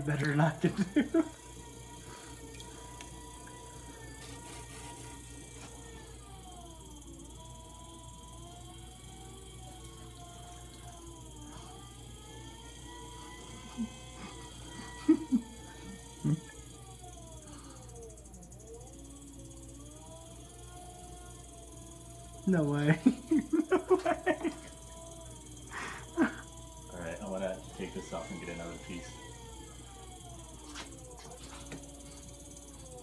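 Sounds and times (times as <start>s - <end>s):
potter's wheel motor whine: 0.0s - 33.0s
steady low hum: 0.0s - 33.0s.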